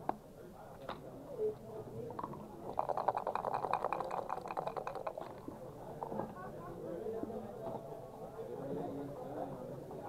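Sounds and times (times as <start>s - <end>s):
dice rattling in a cup: 2.2s - 5.5s.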